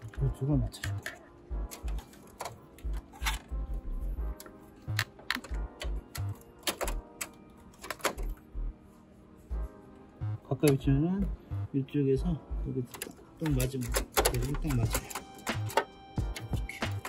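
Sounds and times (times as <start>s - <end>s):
faint background music: 0.0s - 17.0s.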